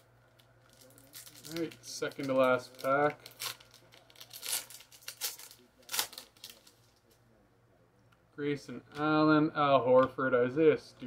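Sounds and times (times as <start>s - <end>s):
wrapper crackles: 0.3s - 7.1s
card pack wrapper torn open: 0.7s - 6.8s.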